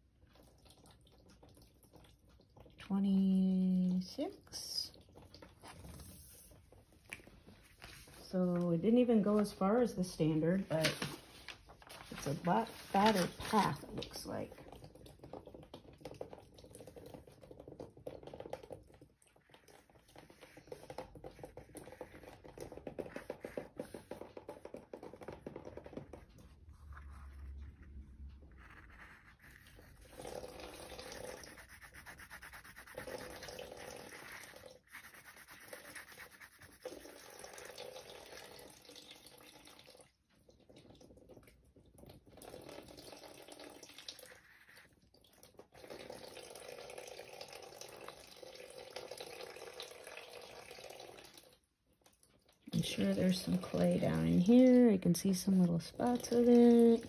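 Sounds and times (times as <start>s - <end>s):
pen scratching on paper: 20.4s - 37.2s.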